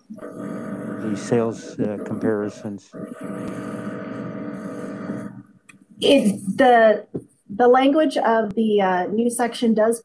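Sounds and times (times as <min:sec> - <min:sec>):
electrical hum and buzz: 0:00.0 - 0:09.9.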